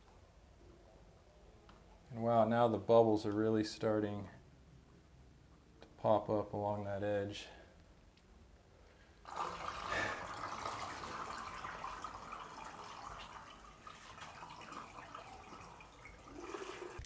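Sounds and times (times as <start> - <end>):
water draining down shower drain: 9.2 - 17.0.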